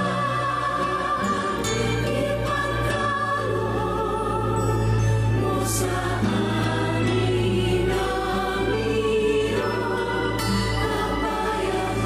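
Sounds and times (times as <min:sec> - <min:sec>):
choir singing a hymn: 0:00.0 - 0:12.0.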